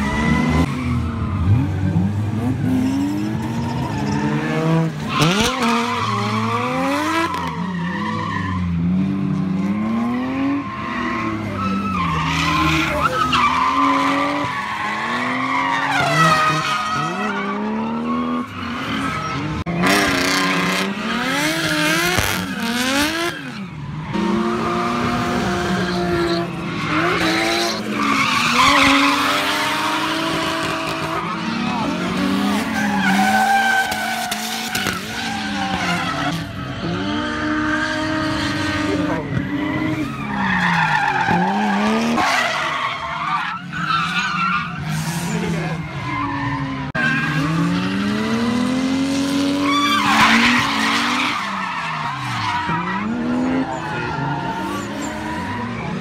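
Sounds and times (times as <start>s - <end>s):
car engines revving: 0.0s - 56.0s
tyres skidding and squealing: 0.0s - 56.0s.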